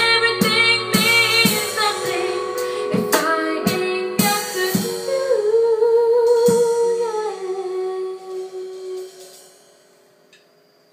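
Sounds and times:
live band backing: 0.0s - 5.6s
woman singing long note: 3.4s - 9.4s.

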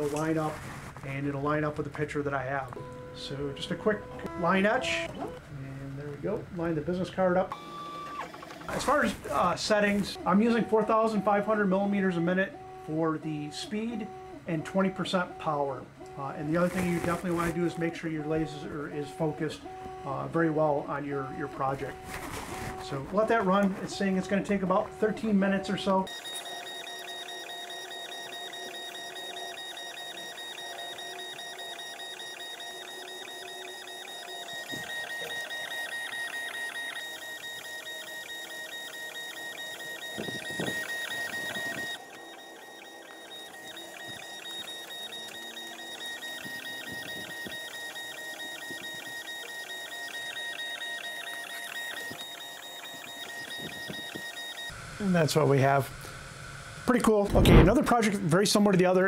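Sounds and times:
laser engraver stepper motors whining: 1.8s - 57.2s.

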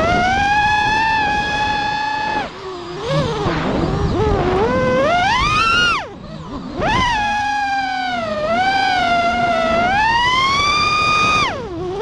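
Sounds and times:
quadcopter motors whining: 0.0s - 12.0s.

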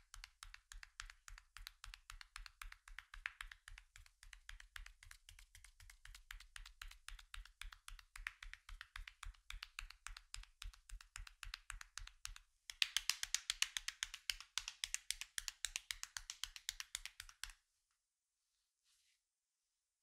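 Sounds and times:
hands patting skin: 0.0s - 17.6s.

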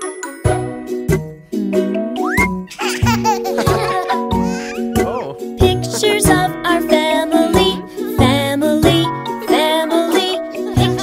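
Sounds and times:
bouncy children's song: 0.0s - 11.0s
baby giggling: 2.2s - 5.4s.

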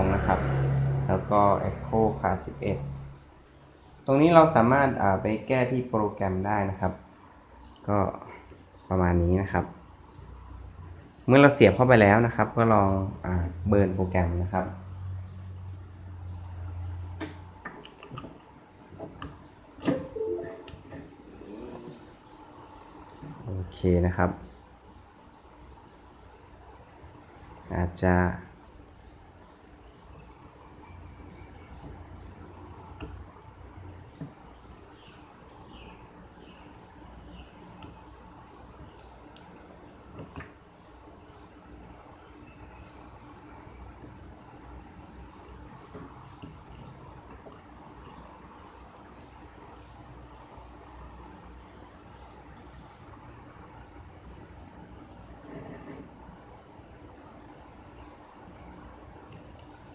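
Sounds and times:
faint high-pitched tone: 19.8s - 22.0s.

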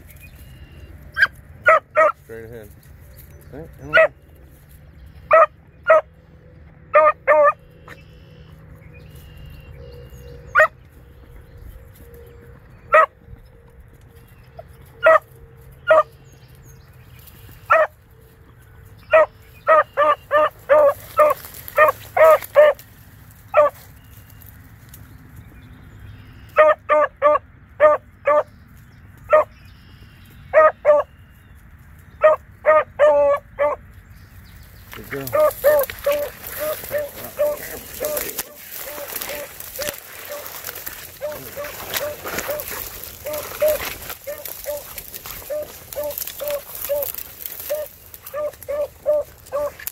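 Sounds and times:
dog barking: 1.2s - 2.2s, 3.8s - 4.2s, 5.3s - 6.1s, 6.9s - 7.6s, 10.5s - 10.7s, 12.9s - 13.1s, 15.0s - 15.2s, 15.9s - 16.1s, 17.7s - 17.9s, 19.1s - 22.8s, 23.5s - 23.8s, 26.6s - 28.5s, 29.3s - 29.5s, 30.5s - 31.1s, 32.2s - 33.8s, 35.2s - 40.6s, 41.2s - 49.8s.

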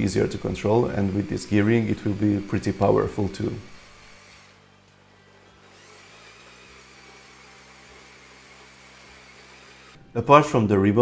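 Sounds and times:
electric motor whir and gears: 0.0s - 10.1s.

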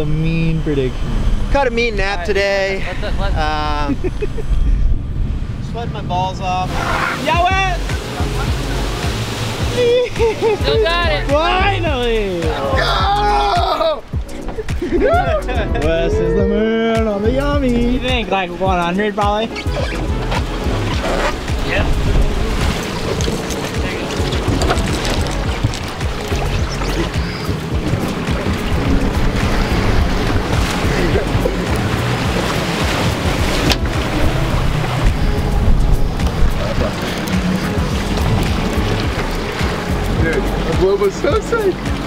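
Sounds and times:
wind on microphone: 0.0s - 13.2s, 19.5s - 42.0s
boat engine: 0.0s - 42.0s
water wash: 0.0s - 42.0s.

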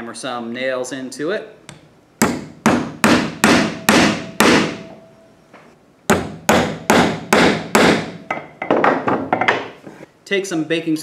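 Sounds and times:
hammer driving nails into wood: 1.7s - 4.8s, 6.1s - 9.6s.

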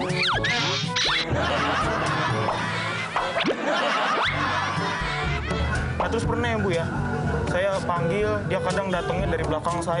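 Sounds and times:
background music: 0.0s - 10.0s
man laughing heartily: 1.2s - 6.0s.

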